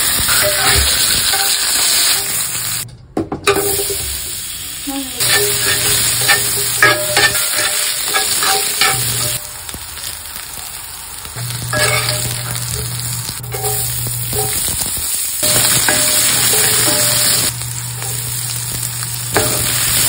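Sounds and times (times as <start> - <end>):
vegetables sizzling in hot oil: 0.0 - 2.8, 3.6 - 20.0
metal utensil clicking and scraping: 5.2 - 9.4, 11.7 - 12.7, 13.5 - 14.8.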